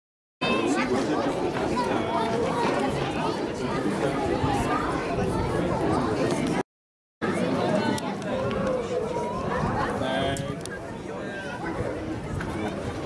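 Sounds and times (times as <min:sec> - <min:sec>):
people chattering: 0:00.4 - 0:06.6, 0:07.2 - 0:13.0.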